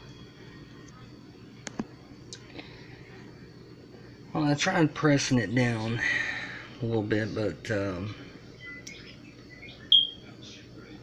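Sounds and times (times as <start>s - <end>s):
low background hum: 0.0s - 11.0s
high chirps: 8.6s - 10.3s.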